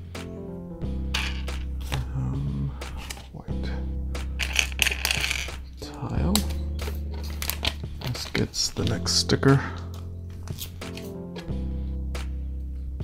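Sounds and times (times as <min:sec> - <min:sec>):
background music with low bass: 0:00.0 - 0:13.0
plastic bricks clicking and rattling: 0:04.4 - 0:05.6.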